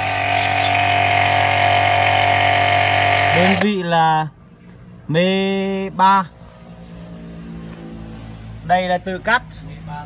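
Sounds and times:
pressure washer motor humming: 0.0 - 3.7
pump whine: 0.0 - 3.7.

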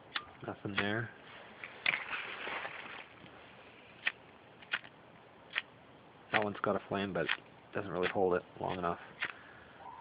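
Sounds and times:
plastic bag rustling: 1.3 - 3.6.

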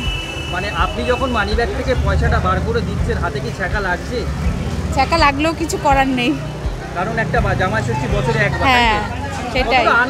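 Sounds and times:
people talking: 4.9 - 6.4, 7.1 - 10.0.

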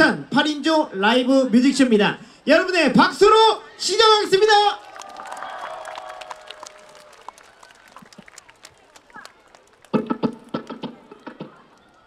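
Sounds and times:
audience applause: 4.6 - 10.8.

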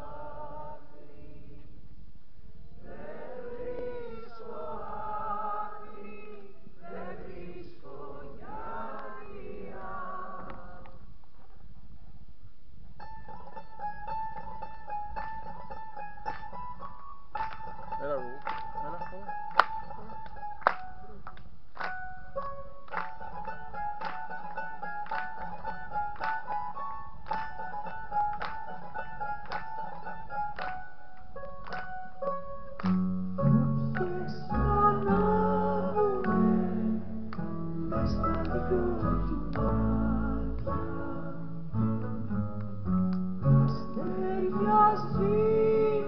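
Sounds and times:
people singing: 0.0 - 1.8, 2.7 - 11.1, 33.4 - 41.8, 43.6 - 46.0
mandolin and guitar orchestra: 12.8 - 46.0.

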